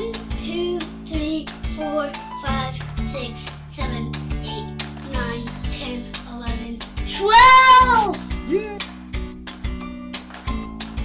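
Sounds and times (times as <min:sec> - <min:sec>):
child's high sung note: 0:07.1 - 0:08.8.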